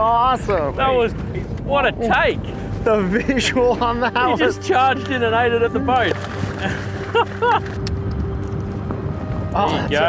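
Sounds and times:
men laughing: 3.0 - 5.1, 6.4 - 7.8.

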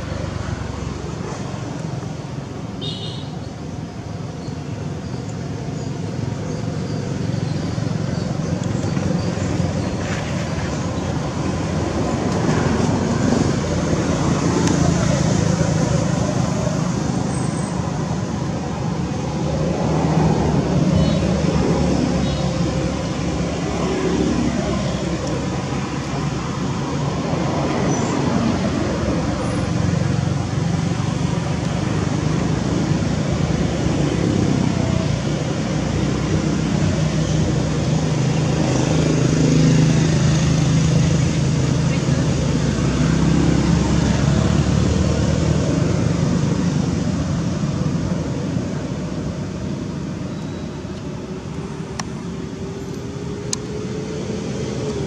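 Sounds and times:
loud traffic rumble: 0.0 - 55.0.

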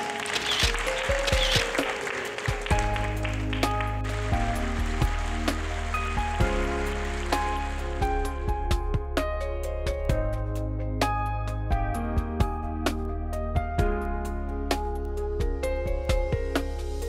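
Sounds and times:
sustained chords and melody: 0.2 - 17.0
low bass notes: 2.7 - 17.0.

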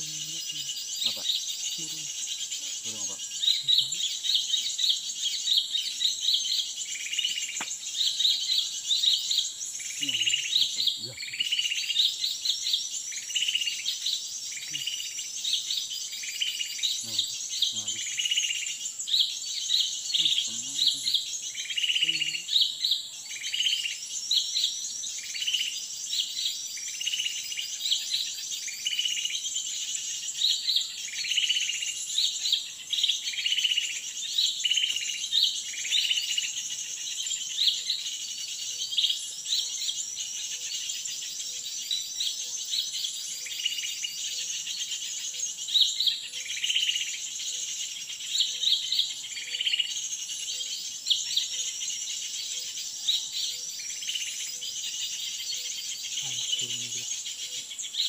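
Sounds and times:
high insect drone: 0.0 - 58.0
small birds chirping: 0.0 - 58.0.

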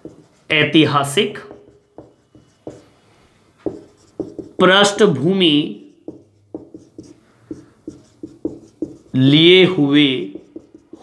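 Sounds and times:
marker writing on whiteboard: 0.0 - 11.0.

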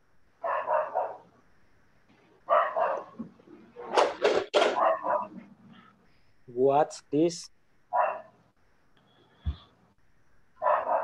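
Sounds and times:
dog barking: 0.4 - 1.3, 2.5 - 3.2, 3.8 - 5.4, 7.9 - 8.4, 10.6 - 11.0.

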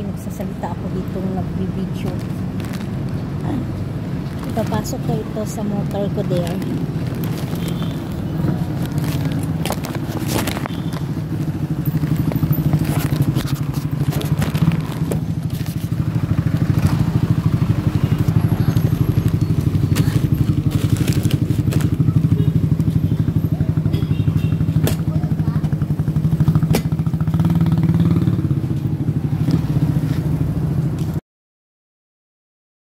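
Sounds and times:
motorcycle engine running: 0.4 - 31.2.

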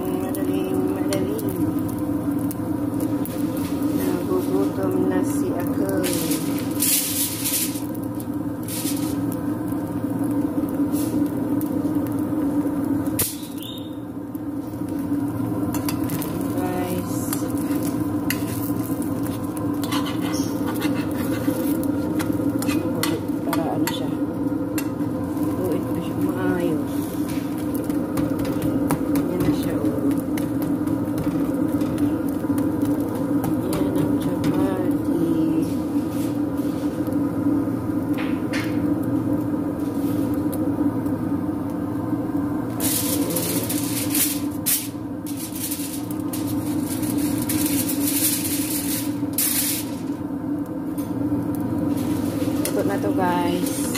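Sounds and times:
chapati sizzling in a pan: 0.0 - 53.9
steady droning hum: 0.0 - 53.9
metal spatula scraping a pan: 17.6 - 23.2.

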